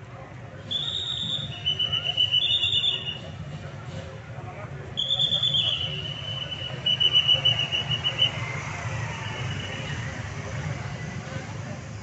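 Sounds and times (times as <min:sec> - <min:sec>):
crowd chatter: 0:00.0 - 0:12.0
motorbike engines: 0:00.0 - 0:12.0
shrill whistle blast: 0:00.7 - 0:03.3, 0:05.0 - 0:08.4.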